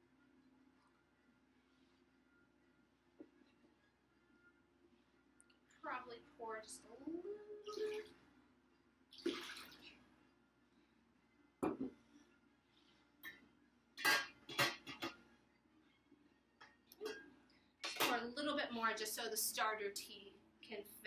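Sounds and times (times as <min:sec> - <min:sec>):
liquid splashing into glass jar: 0:09.2 - 0:09.9
glass jar knocking on counter: 0:11.6 - 0:11.9
metal pot lid clinking: 0:14.0 - 0:15.2.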